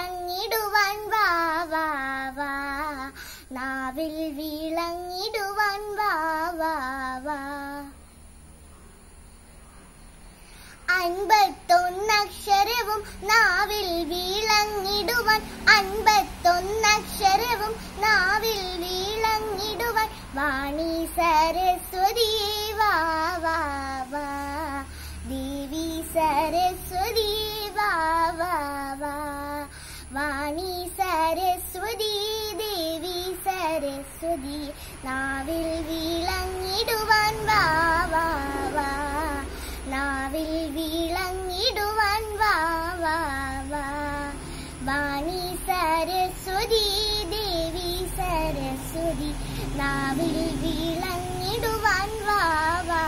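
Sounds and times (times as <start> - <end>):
girl singing devotional song: 0.0 - 8.4, 10.2 - 53.0.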